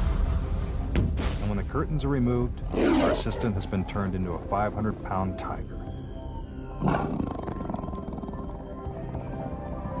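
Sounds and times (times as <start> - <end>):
background music: 0.0 - 10.0
tiger roaring: 2.7 - 3.6, 6.8 - 8.4.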